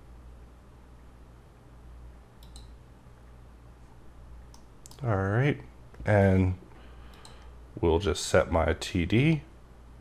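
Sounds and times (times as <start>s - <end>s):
faint low steady hum: 0.0s - 10.0s
mouse button clicks: 2.4s - 2.8s.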